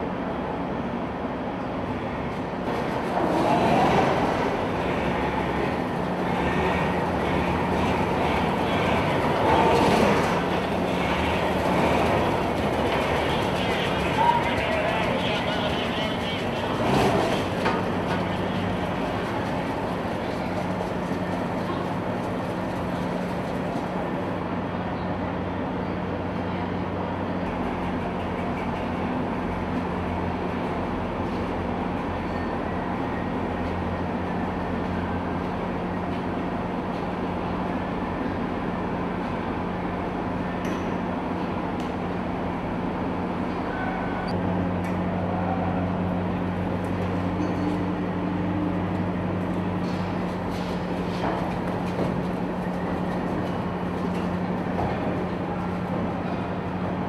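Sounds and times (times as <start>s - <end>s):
steel tracks clattering: 2.3s - 24.4s, 27.4s - 42.2s, 44.8s - 57.0s
diesel engine running: 2.6s - 40.6s, 44.4s - 57.0s.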